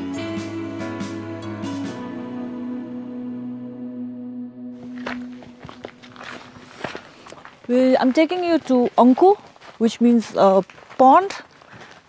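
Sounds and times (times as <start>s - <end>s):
background music tone: 0.0s - 7.3s
footsteps on dirt path: 4.8s - 12.0s.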